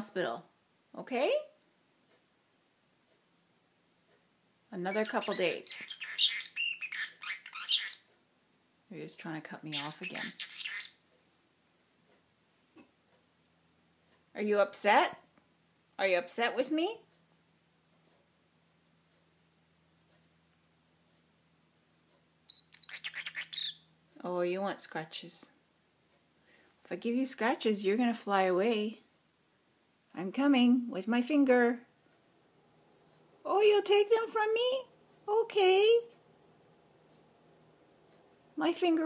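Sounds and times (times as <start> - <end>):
parrotlet chirping: 4.8 - 8.1, 9.6 - 11.0, 22.5 - 24.0.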